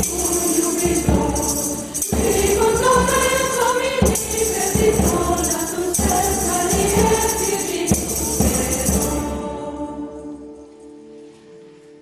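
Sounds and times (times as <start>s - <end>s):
percussive beat: 0.0s - 9.2s
mixed choir singing: 0.0s - 10.7s
acoustic guitar: 0.0s - 12.0s.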